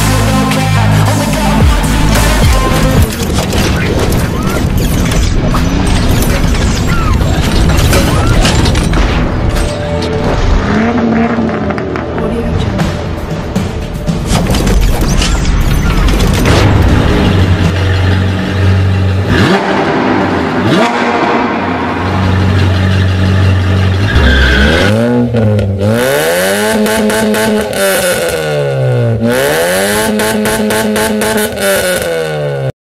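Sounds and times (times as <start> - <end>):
sports car engine drone: 8.7 - 14.3, 15.4 - 32.7
engine revving: 10.2 - 13.2, 14.2 - 32.7.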